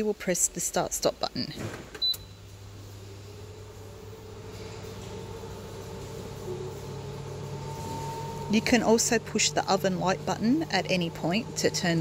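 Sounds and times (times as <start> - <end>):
fan motor humming: 0.0 - 12.0.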